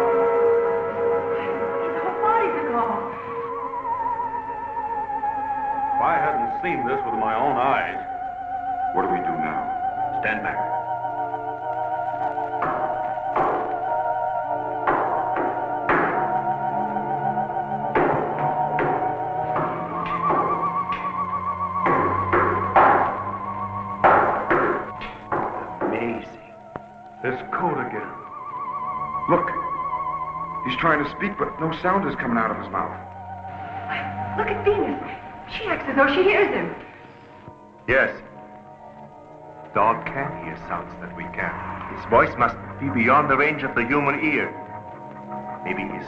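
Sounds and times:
eerie high wavering tone: 0.0 - 37.2.

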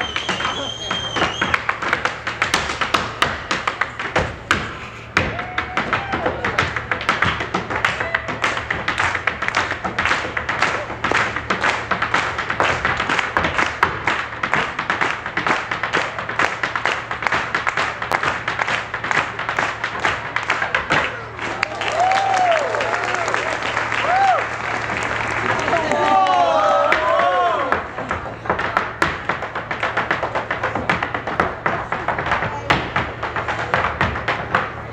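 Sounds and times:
audience applause and whoops: 0.0 - 1.7, 5.2 - 6.6, 20.7 - 27.9
step-dancing taps on wooden stage: 0.0 - 34.9
traditional dance tune: 0.0 - 34.9.

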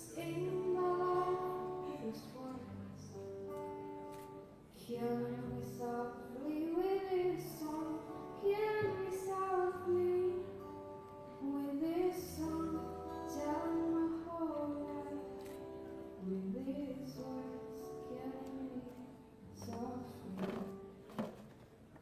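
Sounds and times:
girl singing into microphone: 0.0 - 3.9, 4.7 - 21.3.

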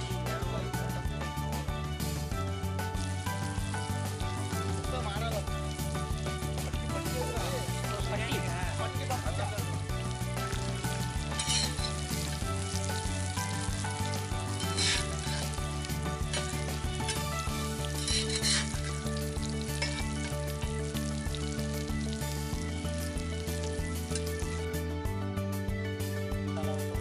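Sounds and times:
fish frying in hot oil: 2.0 - 24.7
metal spatula stirring: 11.3 - 12.1, 14.4 - 15.6, 16.2 - 19.0, 19.7 - 20.3.

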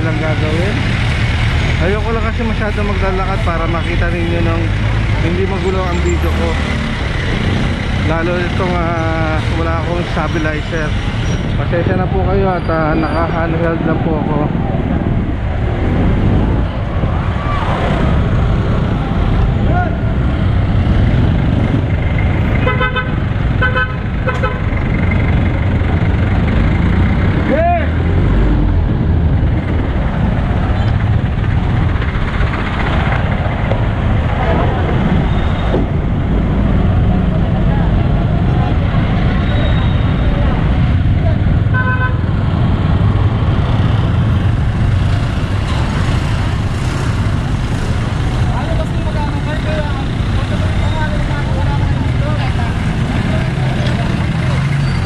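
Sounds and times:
traffic engines rumbling: 0.0 - 55.0.

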